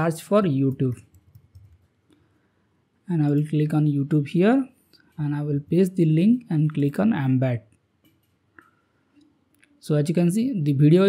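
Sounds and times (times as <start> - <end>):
keyboard typing: 0.7 - 2.0, 8.0 - 8.7.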